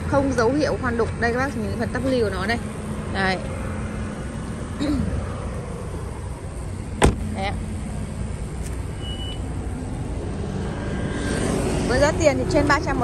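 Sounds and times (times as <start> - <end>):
vehicle rumble: 0.0 - 13.0.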